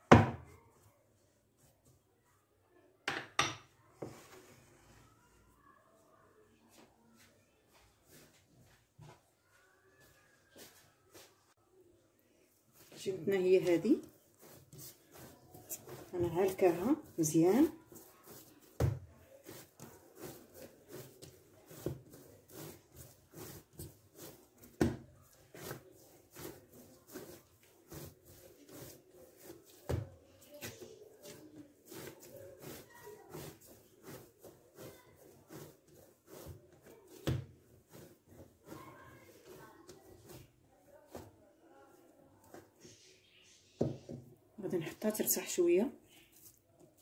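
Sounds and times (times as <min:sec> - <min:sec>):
dough thumping and slapping: 0:12.8 - 0:41.4.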